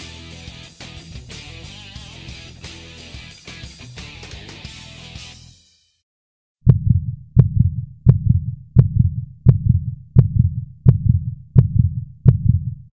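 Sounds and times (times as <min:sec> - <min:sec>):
heartbeat lub-dub: 0:06.6 - 0:12.9.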